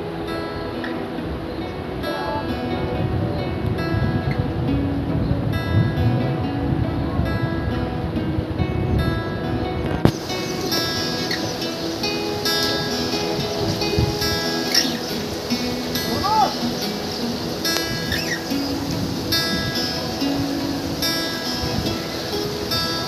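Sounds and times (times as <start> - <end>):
acoustic guitar melody: 0.0 - 23.0.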